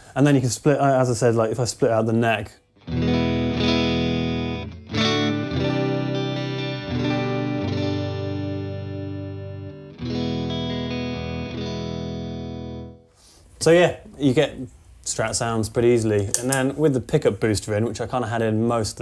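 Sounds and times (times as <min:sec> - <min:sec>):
electric guitar strummed chords: 0:02.8 - 0:13.0.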